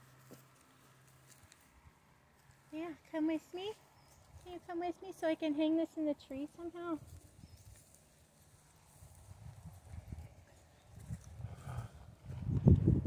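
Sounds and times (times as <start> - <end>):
horse hooves on grass: 0.0 - 12.4.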